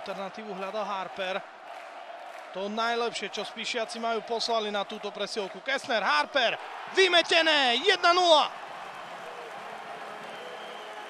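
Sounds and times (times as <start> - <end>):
crowd applauding and cheering: 0.0 - 11.0.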